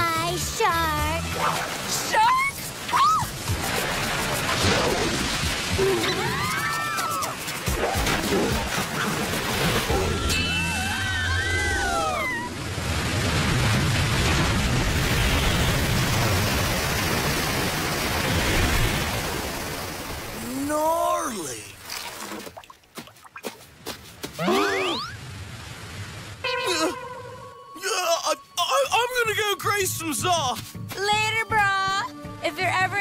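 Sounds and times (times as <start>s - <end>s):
rushing sloshing water: 0.2s - 26.6s
cartoon background music: 26.5s - 33.0s.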